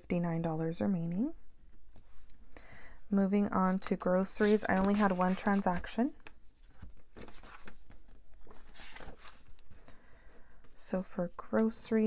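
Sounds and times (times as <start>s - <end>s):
paper pages turning: 4.2s - 9.9s.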